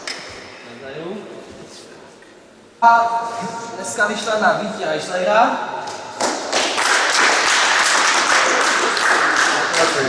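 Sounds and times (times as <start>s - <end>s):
small crowd applauding: 5.9s - 10.0s.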